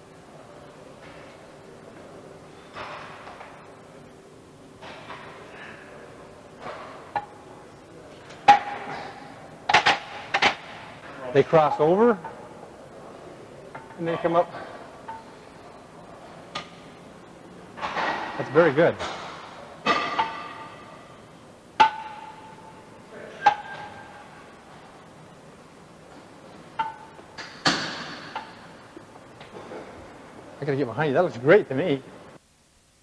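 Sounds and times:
metal dumbbells clanking: 8.4 - 10.9, 17.8 - 18.4, 19.0 - 21.1, 21.8 - 24.8, 26.7 - 28.8
dumbbell clanking against rack: 23.4 - 24.2.

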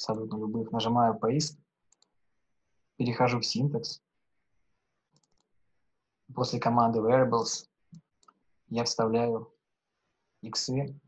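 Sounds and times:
faint computer mouse clicks: 1.9 - 2.2, 5.1 - 5.5.

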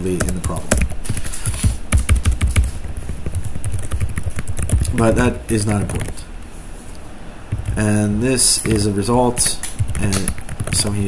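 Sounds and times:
fast typing on keyboard: 0.0 - 6.2, 7.5 - 7.9, 8.6 - 11.0.

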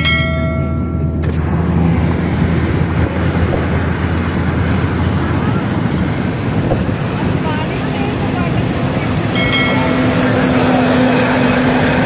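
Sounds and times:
held ringing tone: 0.0 - 1.2, 9.3 - 10.7
car road and engine noise: 0.0 - 12.0.

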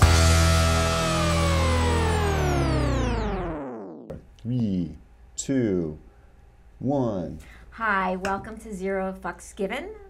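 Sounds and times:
steady low bass: 0.0 - 3.7
synth sliding down in pitch: 0.1 - 4.1.

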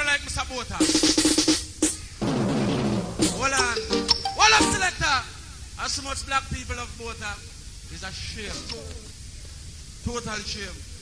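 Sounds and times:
drum roll: 0.8 - 5.1
tone gliding downward: 3.5 - 4.9.

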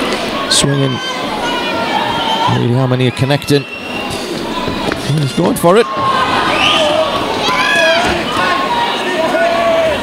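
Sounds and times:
crowd shouting and cheering: 0.0 - 10.0
high shout: 5.8 - 10.0.

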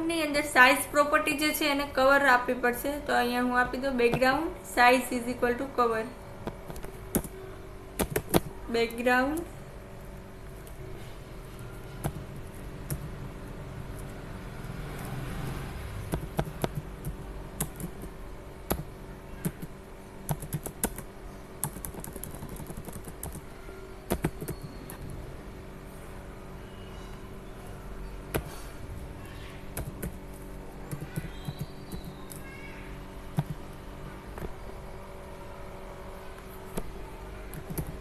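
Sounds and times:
computer keyboard keys clicking: 6.5 - 7.4, 8.0 - 8.6, 16.1 - 18.1, 18.7 - 23.5, 24.1 - 25.0, 29.8 - 30.2, 30.9 - 32.5, 33.4 - 33.6, 37.5 - 38.0.

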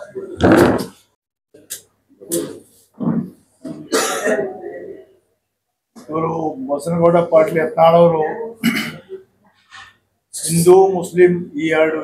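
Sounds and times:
man coughing: 3.8 - 4.6, 8.6 - 9.2.

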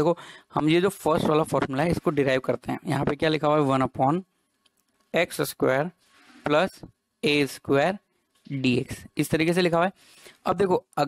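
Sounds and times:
person lecturing: 0.0 - 4.2, 5.1 - 11.0.

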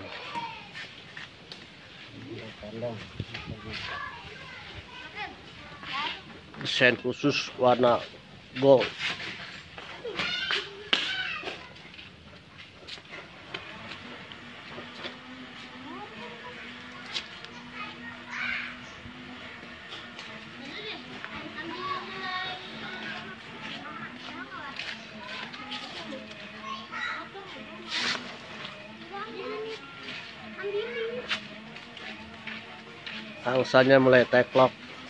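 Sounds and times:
indistinct voices talking: 13.2 - 35.0.

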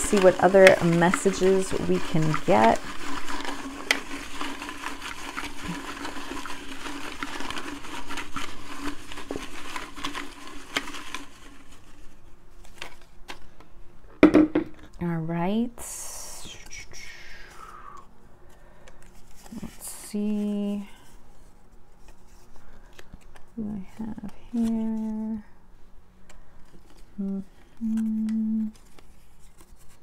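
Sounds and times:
paper slips rattling in glass jar: 0.0 - 12.0
high paper rustle: 0.0 - 13.6, 18.5 - 25.4, 26.2 - 30.0.

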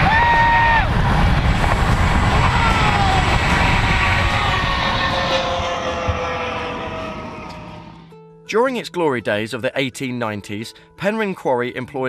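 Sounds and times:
wind buffeting microphone: 0.0 - 7.5
trolley whining on cable: 0.0 - 8.2.

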